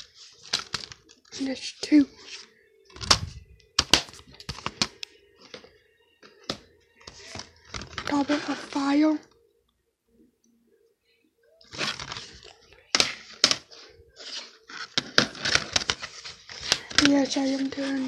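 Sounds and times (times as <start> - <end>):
plastic cases crinkling and scraping: 0.0 - 9.0, 11.6 - 18.0.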